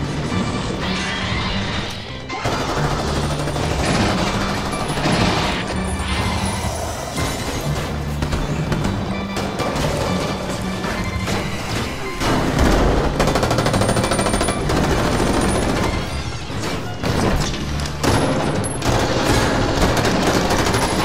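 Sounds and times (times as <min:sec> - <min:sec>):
dramatic background music: 0:00.0 - 0:21.0.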